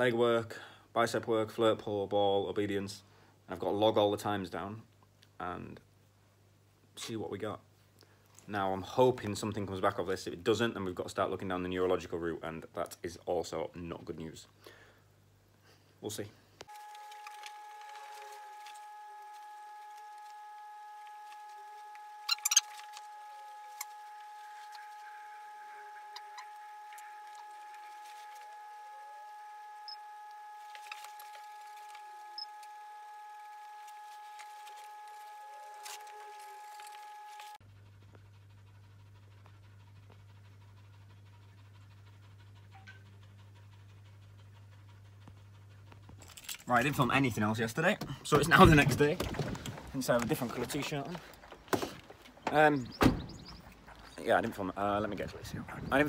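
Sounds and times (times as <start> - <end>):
low hum: 16.6 - 56.0
high-pitched electronic whine: 16.7 - 37.6
dog panting: 37.6 - 48.8, 49.4 - 56.0.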